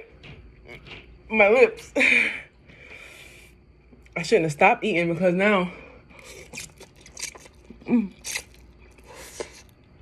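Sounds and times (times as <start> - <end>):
person slurping noodles: 6.2 - 9.7.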